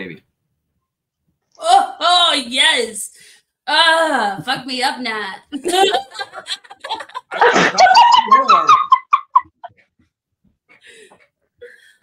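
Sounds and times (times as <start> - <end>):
high-pitched laughter: 5.6 - 9.7.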